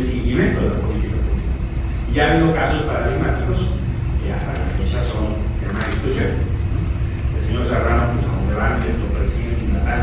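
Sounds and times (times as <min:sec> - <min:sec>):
man talking into a microphone: 0:00.0 - 0:01.4, 0:02.1 - 0:06.5, 0:07.3 - 0:10.0
low hum: 0:00.0 - 0:10.0.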